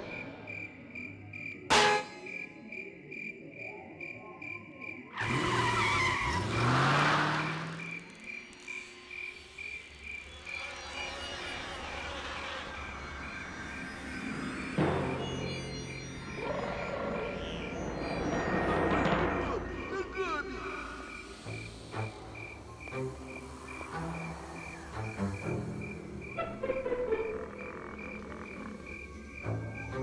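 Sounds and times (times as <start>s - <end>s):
crickets chirping: 0.0s - 30.0s
car passing: 5.2s - 8.1s.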